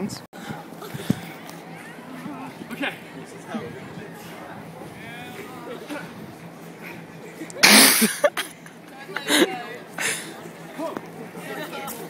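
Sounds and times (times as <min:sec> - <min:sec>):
faint background chatter: 0:00.4 - 0:12.0.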